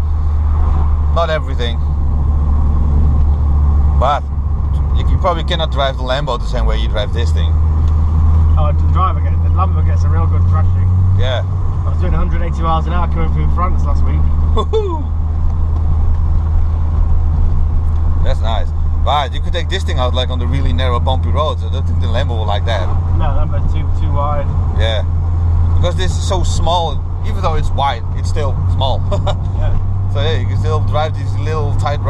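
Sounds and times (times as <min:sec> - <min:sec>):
low engine drone: 0:00.0 - 0:32.0
road noise: 0:00.0 - 0:32.0.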